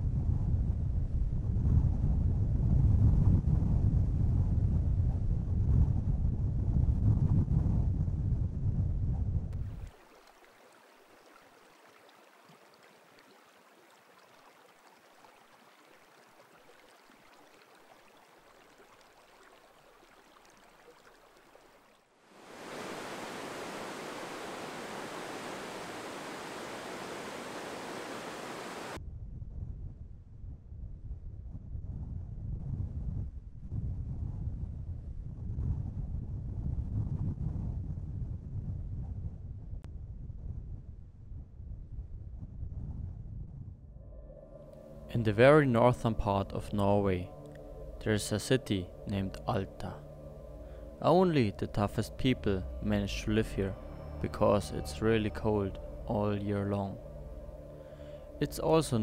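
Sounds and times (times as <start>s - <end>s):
wind buffeting microphone: 0.0s - 9.9s, 22.5s - 44.0s
faint hiss of stream water: 9.6s - 29.0s
river rushing: 9.8s - 29.0s.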